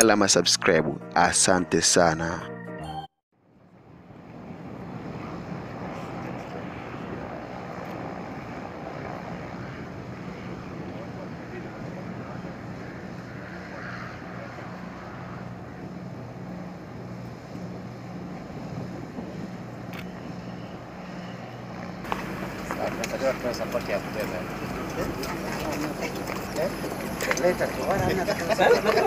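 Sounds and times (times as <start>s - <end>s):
propeller plane engines droning: 3.4s - 29.0s.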